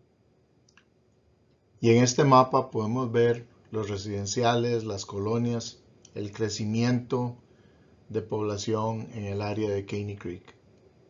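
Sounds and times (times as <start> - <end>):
person speaking: 1.8 - 7.4, 8.1 - 10.5.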